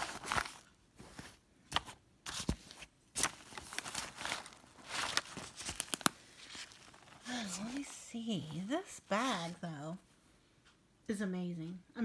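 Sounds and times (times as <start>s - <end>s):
fabric bag rustling: 0.0s - 1.4s, 2.3s - 9.6s.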